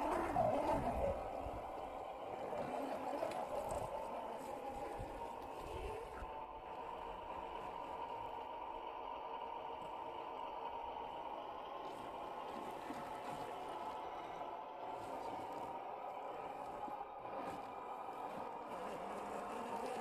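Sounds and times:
tyres scraping over dirt: 0:00.0 - 0:06.3, 0:11.8 - 0:20.0
electric motor whining: 0:00.0 - 0:20.0.

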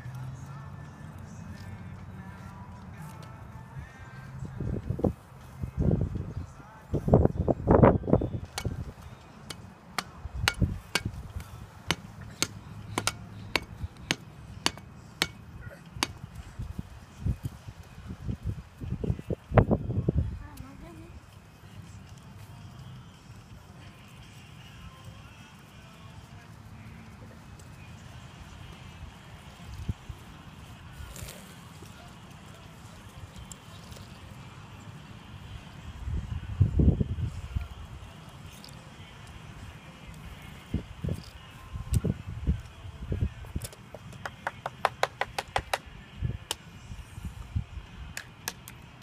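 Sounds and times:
sharp repeating knocks: 0:11.9 - 0:15.4.

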